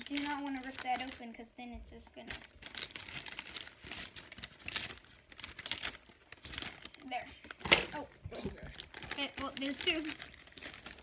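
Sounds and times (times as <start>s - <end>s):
plastic bag crinkling: 0.0s - 11.0s
scissors cutting plastic: 9.0s - 11.0s.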